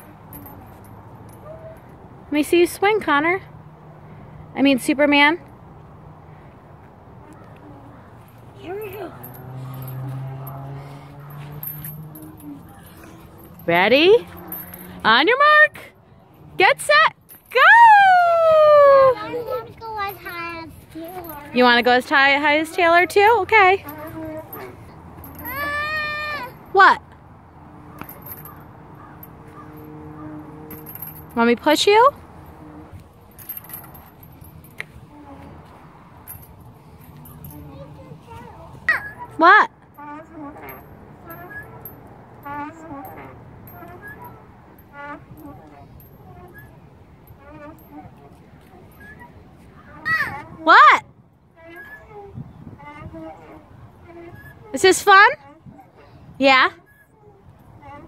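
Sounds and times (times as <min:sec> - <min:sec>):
swing chains jingling: 0:00.0 - 0:58.0.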